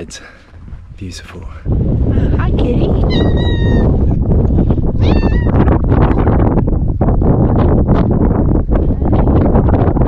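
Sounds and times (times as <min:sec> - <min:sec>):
steady low rumble: 0:00.0 - 0:10.0
cat meowing: 0:03.0 - 0:03.9, 0:05.0 - 0:05.6.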